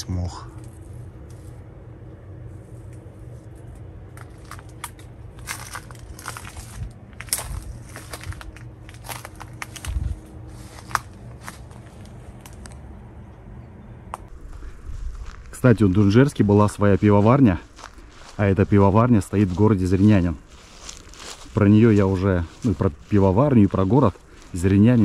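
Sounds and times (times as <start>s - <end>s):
low steady rumble: 0.0s - 25.0s
dry leaves crunching underfoot: 2.6s - 12.8s, 14.3s - 25.0s.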